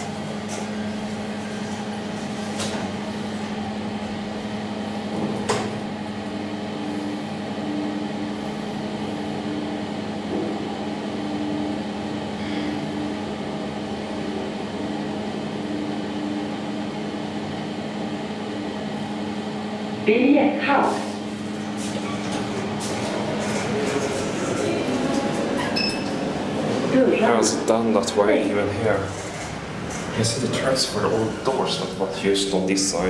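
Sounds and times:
elevator drive humming: 0.0 - 33.0.

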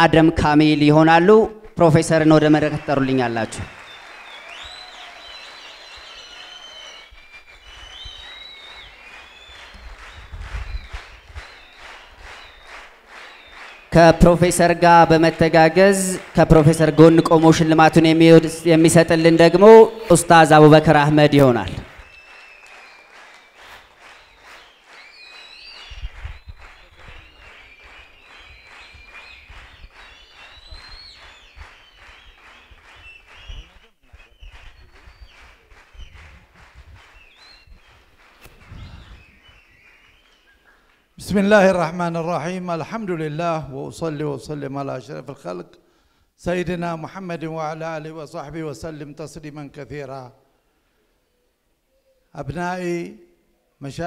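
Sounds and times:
audience applauding: 1.7 - 19.7, 21.0 - 41.2
high calls or whistles from crowd: 2.4 - 15.6, 16.2 - 20.2, 21.0 - 41.2.

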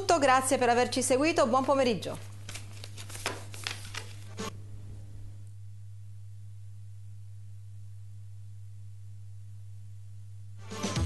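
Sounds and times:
low electrical hum: 0.0 - 10.6.

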